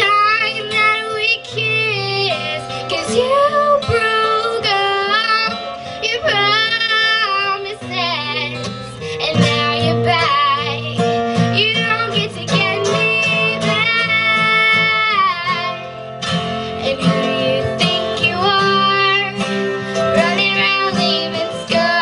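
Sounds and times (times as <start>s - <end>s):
young person singing: 0.0s - 15.9s, 16.5s - 22.0s
acoustic guitar: 0.0s - 22.0s
mandolin: 0.0s - 22.0s.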